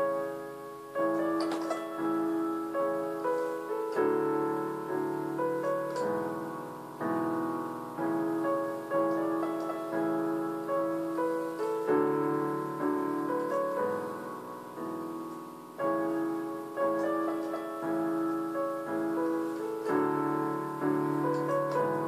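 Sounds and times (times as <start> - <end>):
keyboard piano chords: 0.0 - 22.0.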